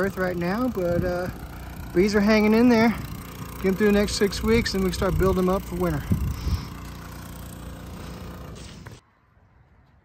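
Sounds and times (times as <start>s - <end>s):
motor running steadily: 0.0s - 9.0s.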